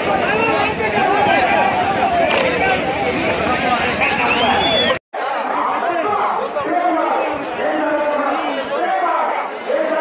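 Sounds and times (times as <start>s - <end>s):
crowd talking and shouting: 0.0s - 10.0s
duller crowd noise: 0.0s - 10.0s.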